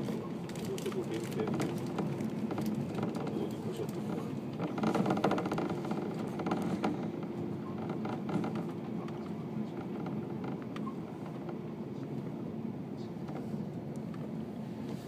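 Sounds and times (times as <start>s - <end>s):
train wheels and motors rumbling: 0.0s - 15.0s.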